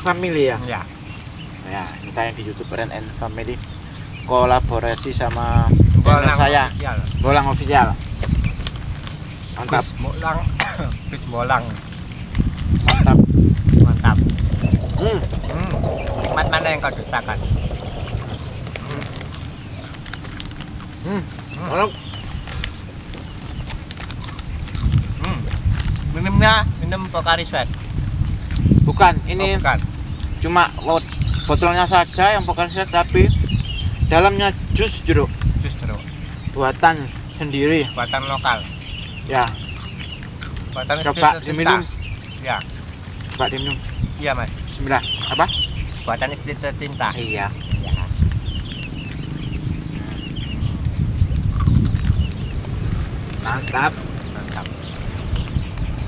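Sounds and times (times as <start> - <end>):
small birds chirping: 0.0 - 56.0
wind buffeting microphone: 0.0 - 56.0
low uneven rumble: 1.9 - 56.0.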